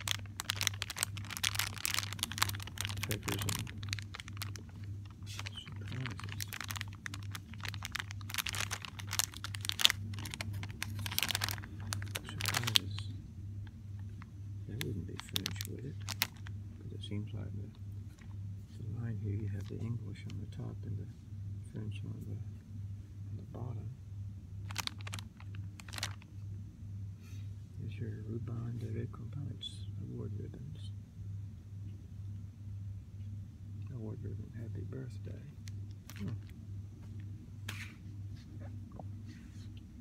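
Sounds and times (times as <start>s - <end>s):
cellophane bag crinkling: 0.0s - 13.1s, 14.0s - 16.6s, 24.6s - 26.3s, 35.6s - 36.6s
low steady hum: 0.0s - 40.0s.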